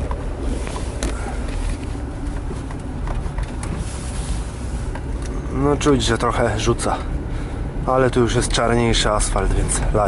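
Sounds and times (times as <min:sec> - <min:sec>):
car engine and tyre rumble: 0:00.0 - 0:10.0.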